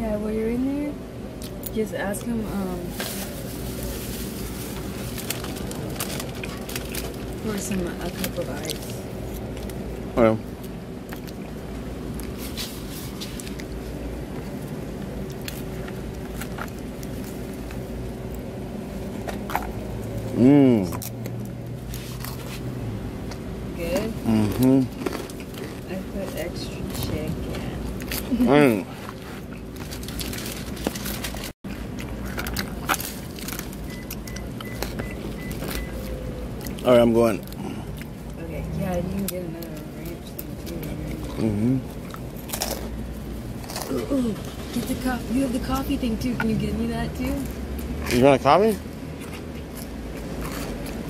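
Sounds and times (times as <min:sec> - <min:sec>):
low background hum: 0:00.0 - 0:51.0
soft squishes of salad: 0:02.8 - 0:10.0, 0:10.6 - 0:18.4.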